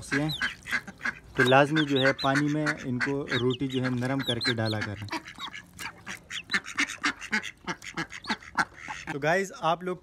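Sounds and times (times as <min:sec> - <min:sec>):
chickens calling: 0:00.0 - 0:09.8.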